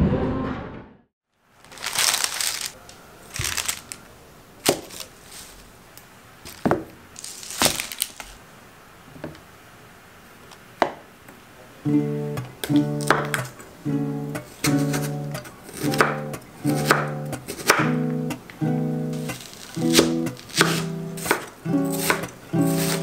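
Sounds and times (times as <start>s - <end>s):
paper crinkling: 1.5s - 5.8s, 6.4s - 8.4s, 19.2s - 21.4s
strummed acoustic guitar: 11.8s - 23.0s.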